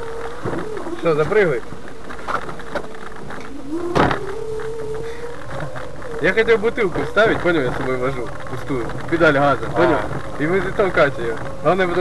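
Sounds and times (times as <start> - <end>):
electric motor whining: 0.0 - 12.0
rising tone: 0.0 - 12.0.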